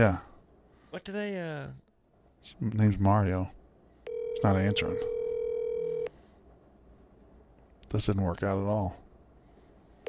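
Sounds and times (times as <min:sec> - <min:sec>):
telephone ringback tone: 0:04.1 - 0:06.1.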